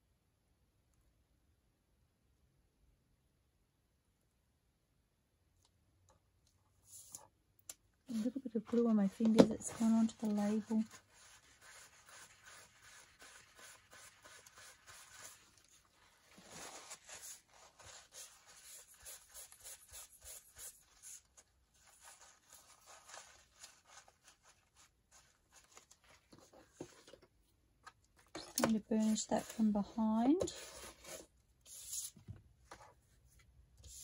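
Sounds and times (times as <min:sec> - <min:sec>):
tissue rubbing on paper: 0:09.6 - 0:26.3, 0:28.9 - 0:32.2.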